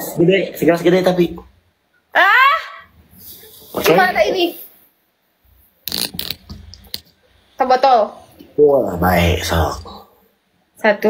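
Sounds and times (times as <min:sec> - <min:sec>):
plastic bottle crinkling: 0:05.9 - 0:07.0.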